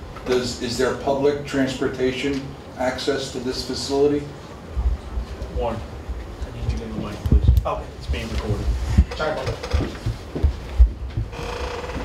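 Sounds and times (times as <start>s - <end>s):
microphone handling thumps: 6.1s - 12.0s.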